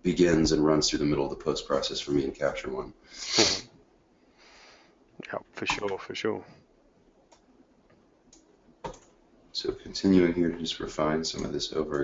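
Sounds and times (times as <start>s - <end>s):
faint hiss: 2.0s - 6.8s
person sneezing: 3.2s - 3.7s.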